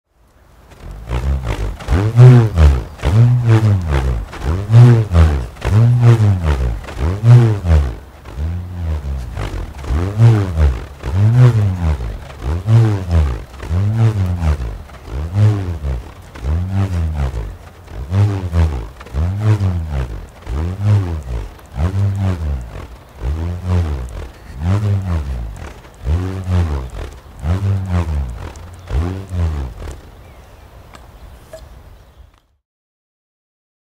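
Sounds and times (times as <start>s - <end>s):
bullroarer humming in a pulsing roar: 0.5s - 30.6s.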